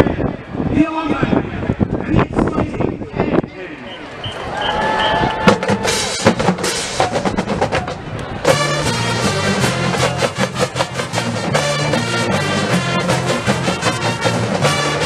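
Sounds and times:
marching band drums and percussion: 0:04.8 - 0:15.0
brass section sustained chords: 0:08.4 - 0:15.0.

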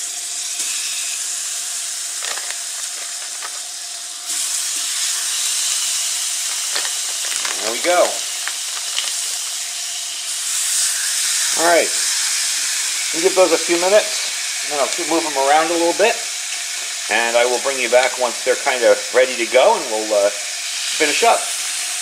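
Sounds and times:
hot dogs sizzling on a griddle: 0:00.0 - 0:22.0.

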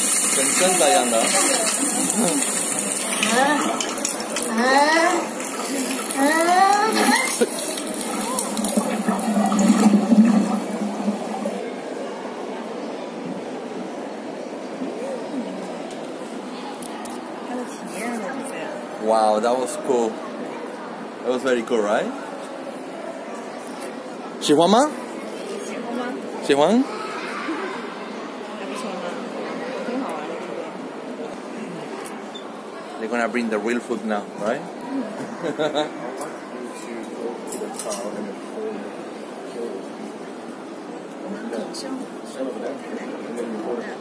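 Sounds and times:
rushing water over loudspeakers: 0:00.0 - 0:12.0
chatter in an echoing room: 0:00.0 - 0:44.0.

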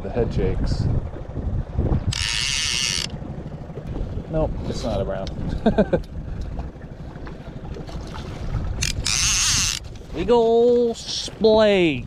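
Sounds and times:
wind buffeting microphone: 0:00.0 - 0:12.0
water slapping boat hull: 0:00.2 - 0:12.0.

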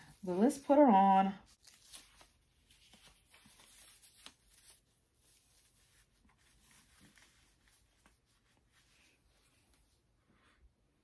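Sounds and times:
wig rustling on head: 0:00.0 - 0:10.8.

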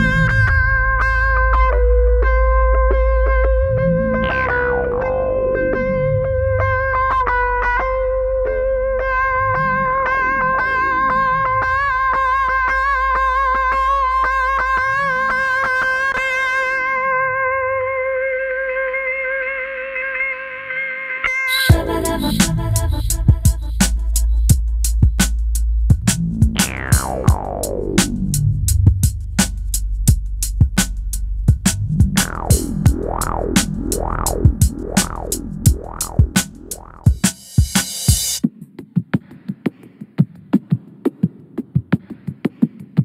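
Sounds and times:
effected electric guitar note: 0:00.0 - 0:13.3, 0:26.6 - 0:28.6, 0:32.1 - 0:37.1
deep swooping bass: 0:00.0 - 0:13.8, 0:21.7 - 0:37.3
ticking beat: 0:21.7 - 0:38.4.

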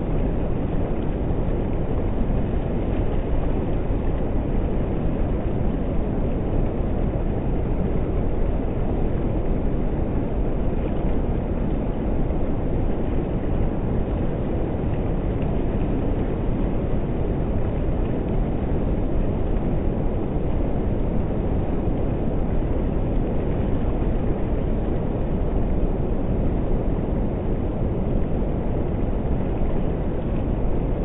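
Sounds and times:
strong wind buffeting microphone: 0:00.0 - 0:31.0.

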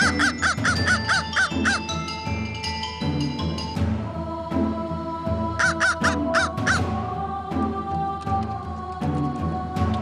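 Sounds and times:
crow cawing: 0:00.0 - 0:01.8, 0:05.6 - 0:06.9
background music with steady beat: 0:00.0 - 0:10.0.

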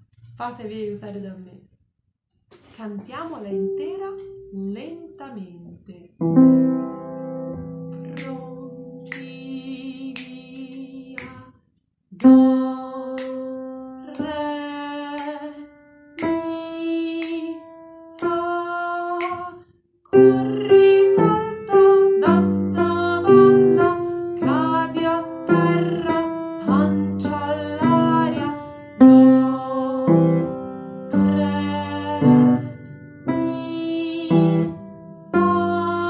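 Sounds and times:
woman singing children's song: 0:02.7 - 0:36.0
keyboard accompaniment: 0:06.2 - 0:11.4.

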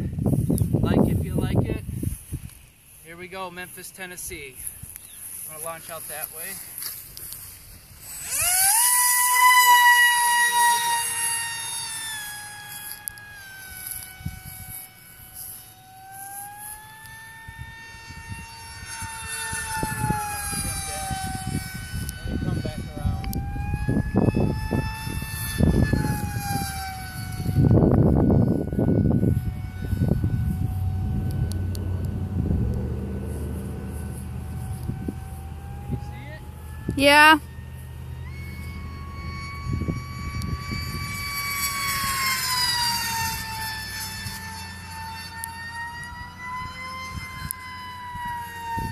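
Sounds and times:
wind buffeting microphone: 0:00.0 - 0:15.4, 0:17.2 - 0:48.9
electric motor high whine: 0:00.0 - 0:48.9.

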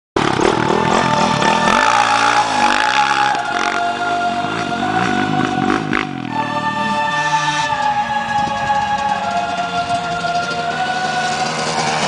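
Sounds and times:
background music: 0:00.2 - 0:12.0
dirt bike engine revving: 0:00.2 - 0:12.0.

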